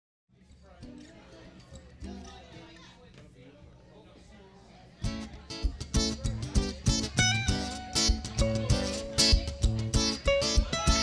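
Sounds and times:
faint voices: 0:00.3 - 0:11.0
music: 0:05.0 - 0:11.0.

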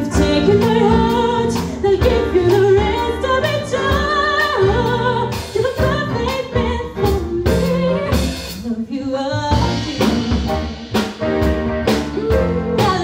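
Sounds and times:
drums striking steady beat: 0:00.0 - 0:08.7, 0:09.5 - 0:13.0
band playing: 0:00.0 - 0:08.8, 0:09.4 - 0:13.0
woman singing: 0:00.0 - 0:10.7, 0:11.9 - 0:13.0.

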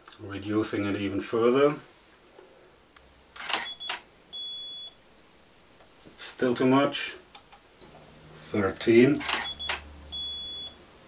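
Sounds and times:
camera shutter clicks: 0:03.4 - 0:04.1, 0:09.2 - 0:09.9
electronic camera beeps: 0:03.5 - 0:05.0, 0:09.3 - 0:10.8.

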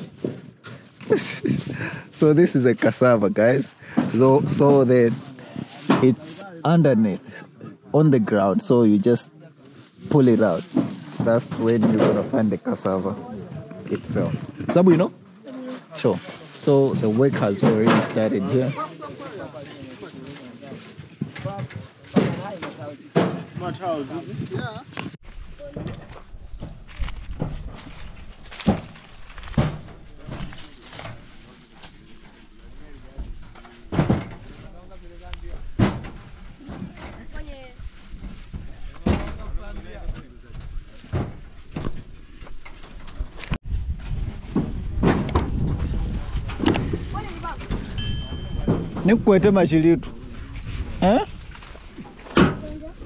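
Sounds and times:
voices talking: 0:47.4 - 0:49.5.

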